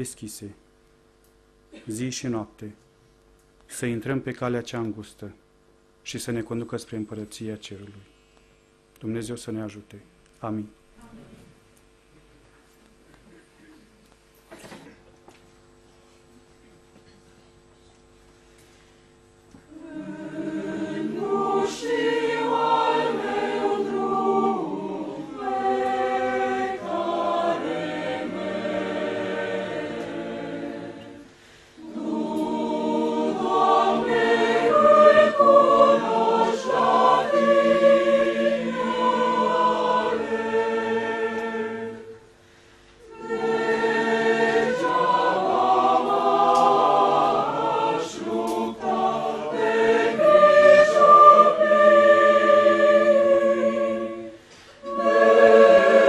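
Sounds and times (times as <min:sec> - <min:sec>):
church choir singing: 0:19.7 - 0:42.3, 0:43.0 - 0:56.0.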